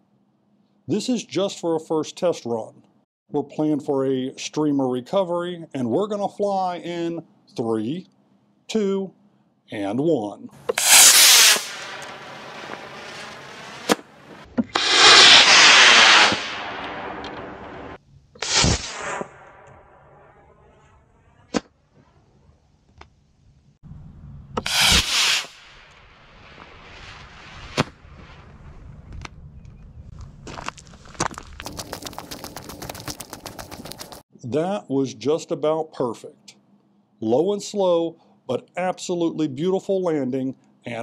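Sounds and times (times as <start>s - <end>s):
sharp pops: 10.6s - 17.7s, 18.4s - 19.8s, 21.5s - 21.8s, 24.6s - 26.7s, 27.6s - 28.3s
rocket motor hissing: 10.7s - 14.0s, 14.7s - 16.9s, 24.6s - 25.7s
footsteps on dry ground: 30.1s - 34.2s.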